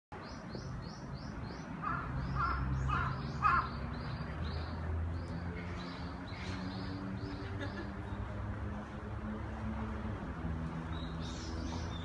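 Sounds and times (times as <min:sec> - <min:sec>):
crow cawing: 0:01.8 - 0:03.8.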